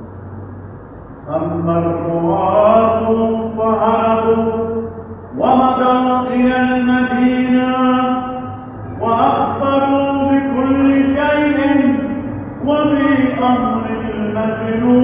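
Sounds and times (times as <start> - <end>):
man chanting: 1.2 - 15.0.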